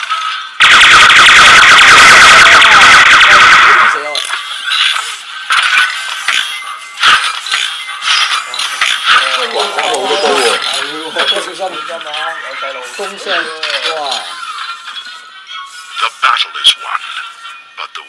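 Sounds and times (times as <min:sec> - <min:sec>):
music through small speaker: 0:00.0 - 0:18.0
toy robot battle sound effects: 0:00.6 - 0:11.5.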